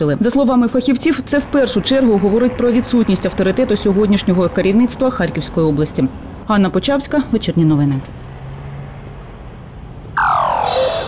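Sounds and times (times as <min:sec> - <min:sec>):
faint street background noise: 0:00.0 - 0:11.0
electronic sweep falling in pitch: 0:10.2 - 0:11.0.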